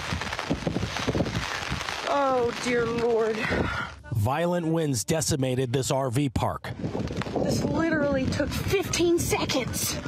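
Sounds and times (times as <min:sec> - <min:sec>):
wind buffeting microphone: 0:00.0 - 0:04.0, 0:06.6 - 0:10.0.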